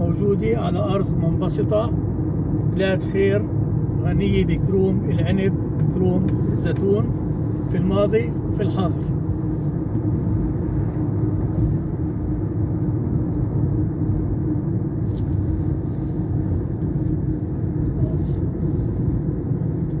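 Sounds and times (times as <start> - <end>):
road and engine noise inside car: 0.0 - 20.0.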